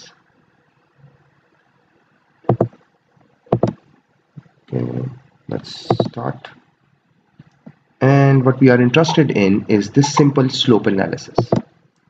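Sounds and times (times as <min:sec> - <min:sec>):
faint room hiss: 0:00.0 - 0:12.0
computer mouse clicking: 0:02.5 - 0:02.8, 0:03.5 - 0:03.8, 0:05.9 - 0:06.2, 0:11.4 - 0:11.6.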